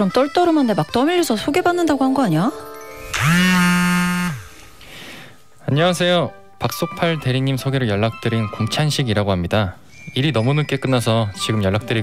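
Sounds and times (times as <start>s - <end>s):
mobile phone vibrating: 3.0s - 4.8s.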